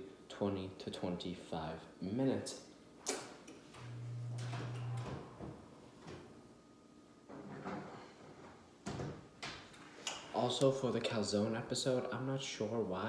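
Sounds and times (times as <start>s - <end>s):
short low hum: 3.8s - 5.8s.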